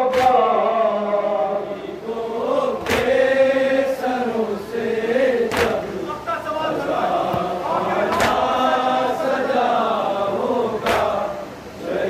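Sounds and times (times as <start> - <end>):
men chanting in unison: 0.0 - 12.0
chest-beating slap: 5.5 - 5.8, 8.1 - 8.4, 10.8 - 11.2.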